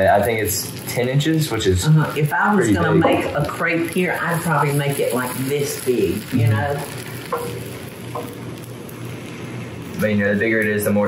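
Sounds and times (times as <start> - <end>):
batter sizzling on hot plate: 0.0 - 11.0.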